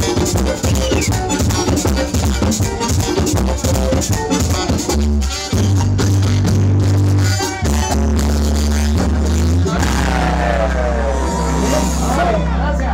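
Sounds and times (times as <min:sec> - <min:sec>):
congas: 0:00.0 - 0:12.4
deep bass notes: 0:00.0 - 0:12.9
live band playing: 0:00.0 - 0:12.9.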